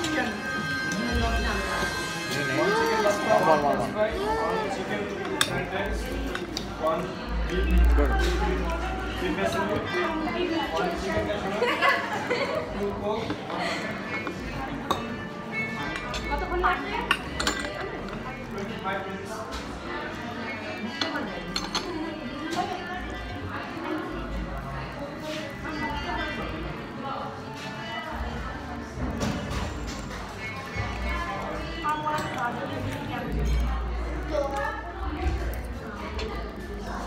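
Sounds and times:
background music: 0.0s - 37.0s.

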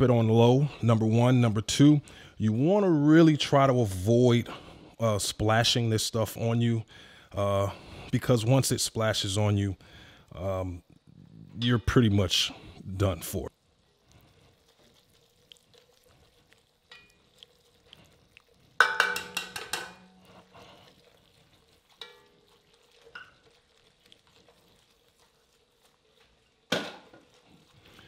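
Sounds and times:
whisk scraping pot: 13.9s - 28.0s
whisk rattling against pot: 16.9s - 17.4s, 18.8s - 28.0s.

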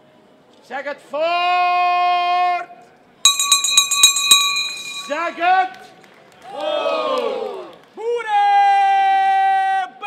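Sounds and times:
brass handbell rung rapidly: 3.3s - 5.4s.

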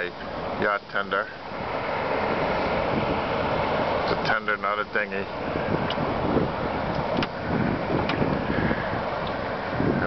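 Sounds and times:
water lapping against boat hull: 0.1s - 10.0s
wind on microphone: 1.5s - 10.0s.

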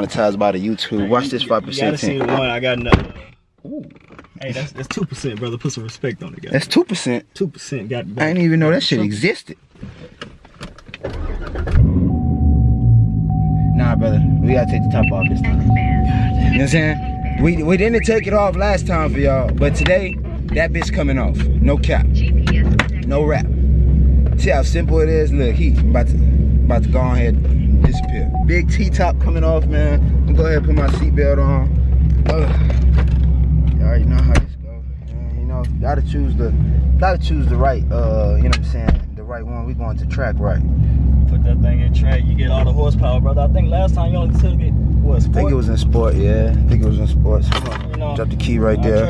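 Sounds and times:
car engine cranking and starting: 10.0s - 49.0s.

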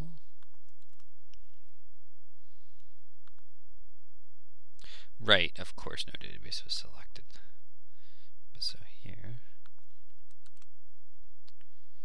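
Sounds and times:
low electrical hum: 0.0s - 12.0s
computer mouse clicks: 0.4s - 1.4s, 9.6s - 10.7s.

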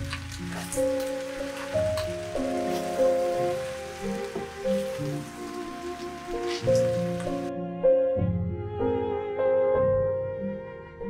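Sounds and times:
stir fry sizzling in pan: 0.0s - 7.5s
wooden spatula scraping: 0.0s - 7.5s
soft background music: 0.0s - 11.0s.

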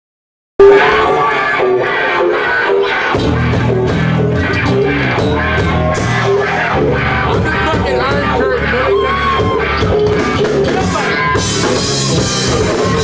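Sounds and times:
bass and drums: 0.6s - 13.0s
electric guitar notes: 0.6s - 13.0s.

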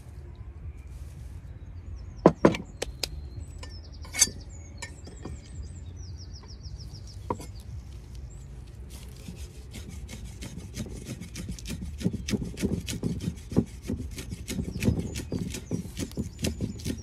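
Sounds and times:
cleaver chopping on wooden block: 9.7s - 17.0s.

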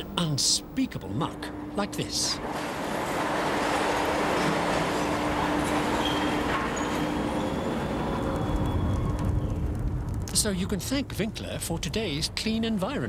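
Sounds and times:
crane humming: 0.0s - 10.1s.

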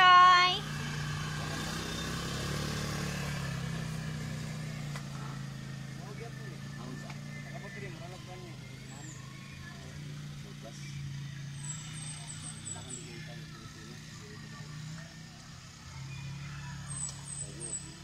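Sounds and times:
atv engine running: 0.0s - 18.0s.

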